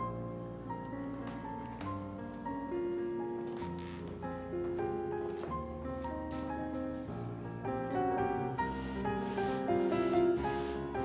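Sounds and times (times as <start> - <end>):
gentle piano music: 0.0 - 11.0
rubbing strokes on canvas: 8.6 - 11.0.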